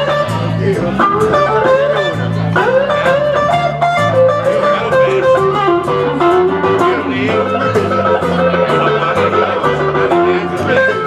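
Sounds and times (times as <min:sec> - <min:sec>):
lead guitar with bent notes: 0:00.0 - 0:11.0
low bass figure: 0:00.0 - 0:11.0
strummed acoustic guitar: 0:00.0 - 0:11.0.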